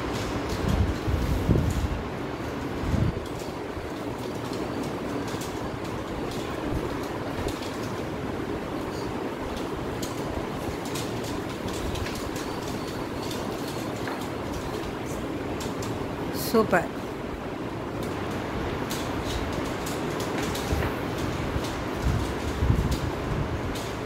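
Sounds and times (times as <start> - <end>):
room hum: 0.0 - 24.0.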